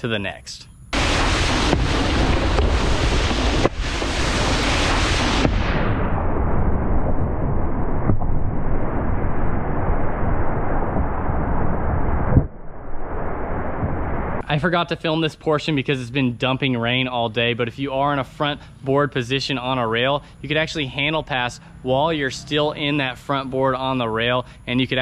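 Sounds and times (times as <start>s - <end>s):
wind buffeting microphone: 1.0s - 14.4s.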